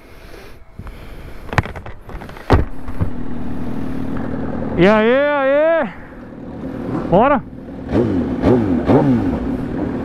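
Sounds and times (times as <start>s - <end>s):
vehicle engine running: 2.1s - 10.0s
loud thump: 2.4s - 3.2s.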